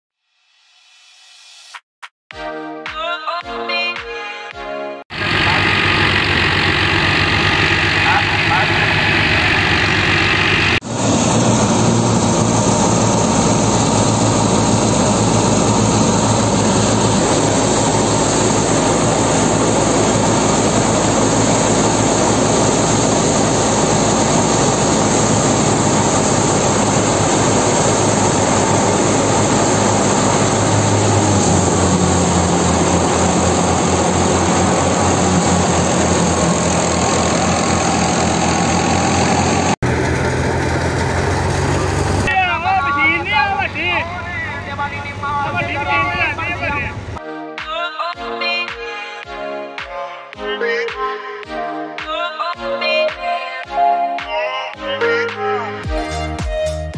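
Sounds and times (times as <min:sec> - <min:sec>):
diesel tractor engine: 0:05.1 - 0:47.2
thresher drum and fan churning: 0:05.1 - 0:47.2.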